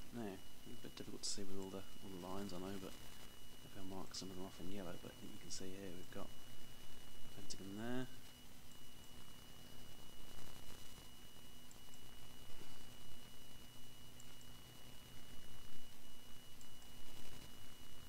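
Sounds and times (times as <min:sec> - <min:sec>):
faint high-pitched whine: 0:00.0 - 0:18.0
low electrical hum: 0:00.0 - 0:18.0.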